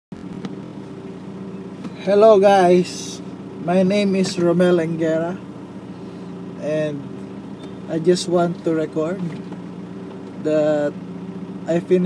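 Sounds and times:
car idling hum: 0.1 - 12.0.

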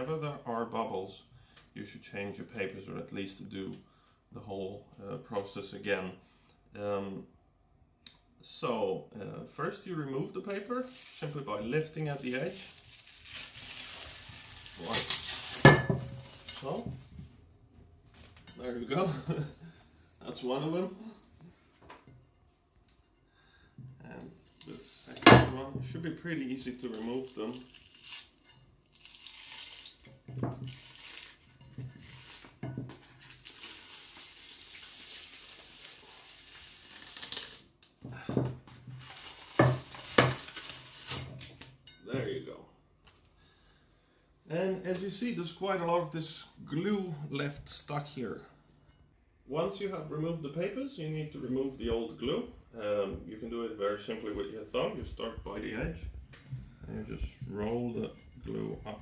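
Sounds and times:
emery paper tearing off disc: 10.8 - 16.8, 26.7 - 37.8, 39.0 - 41.8.

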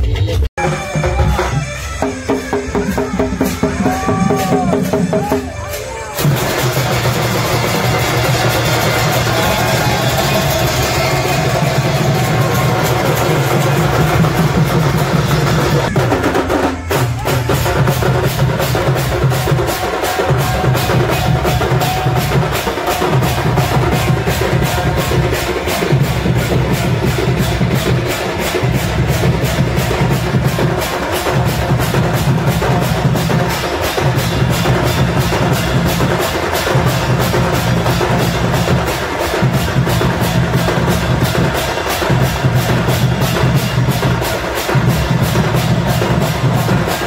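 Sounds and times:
procession band drumming: 0.6 - 47.0
cymbal crashes: 5.7 - 47.0.

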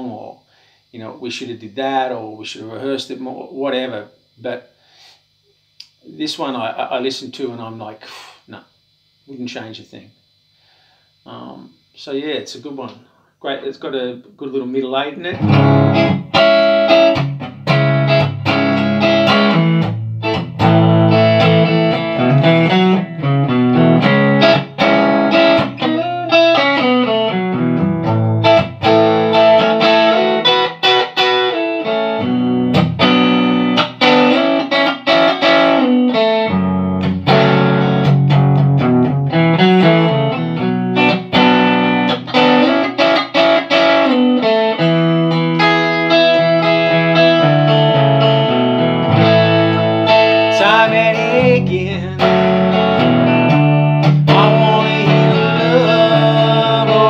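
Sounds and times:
electric guitar strumming chords: 15.3 - 57.0.

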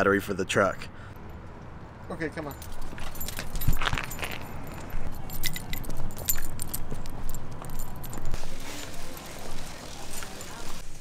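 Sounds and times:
small metal pieces jingling: 2.4 - 9.4.

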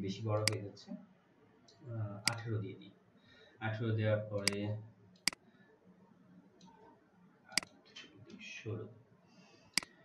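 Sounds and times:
person speaking: 0.0 - 1.0, 1.9 - 2.8, 3.6 - 4.8
computer mouse clicks: 0.4 - 0.6, 1.7 - 2.4, 4.4 - 5.4.

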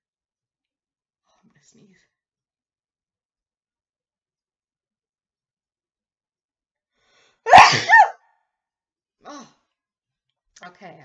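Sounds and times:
woman sneezing: 7.5 - 8.2.

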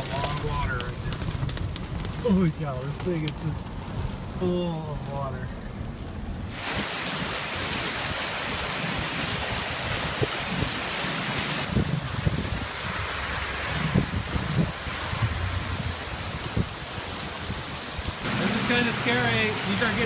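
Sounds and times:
hailstones knocking hard surfaces: 0.0 - 3.6
heavy rain pouring: 0.0 - 20.0.

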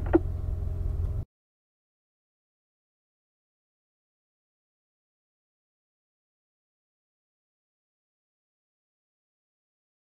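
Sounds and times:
car engine idling: 0.0 - 1.2.

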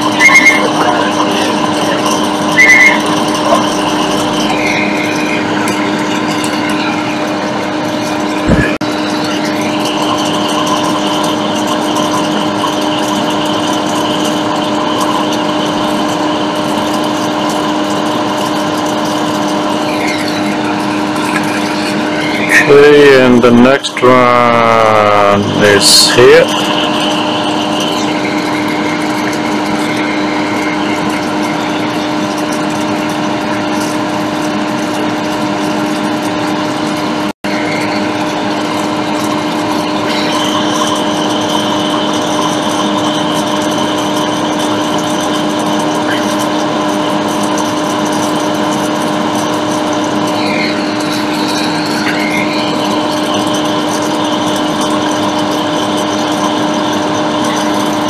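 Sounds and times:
small electric blower motor whirring: 0.0 - 58.0.

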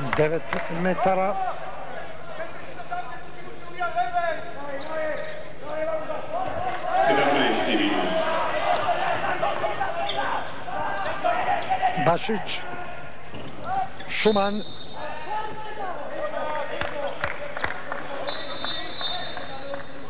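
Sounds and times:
spectators voices and shouts: 0.0 - 17.2.

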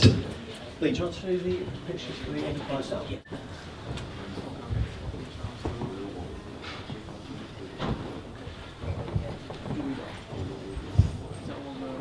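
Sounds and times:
crowded room rumble: 0.0 - 12.0.

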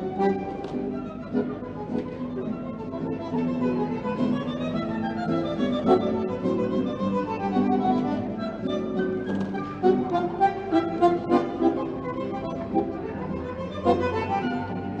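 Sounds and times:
accordion-like reed instrument: 0.0 - 15.0
violins: 0.0 - 15.0.

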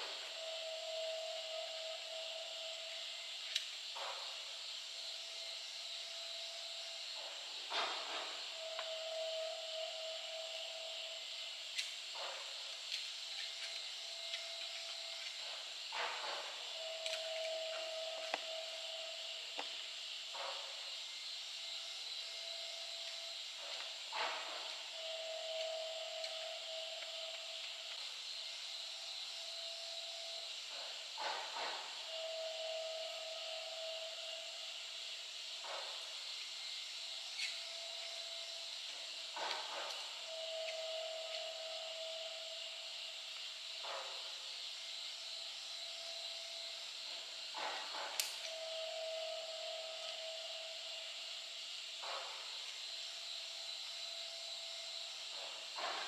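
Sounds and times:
steady high hiss: 0.0 - 56.0.

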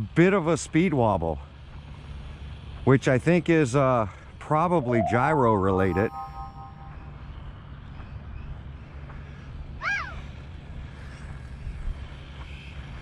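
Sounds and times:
rising-and-falling chirp: 4.8 - 7.2
short chime: 4.8 - 7.3.

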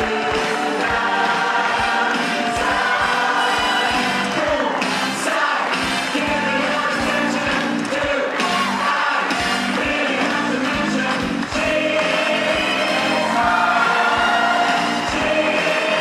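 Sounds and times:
group of voices singing: 0.0 - 16.0
music accompaniment with steady beat: 0.0 - 16.0.

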